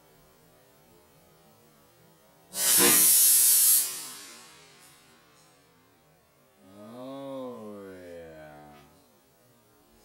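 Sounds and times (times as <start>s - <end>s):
compressed air hiss: 2.5s - 5.4s
balloon bursting: 2.6s - 4.4s.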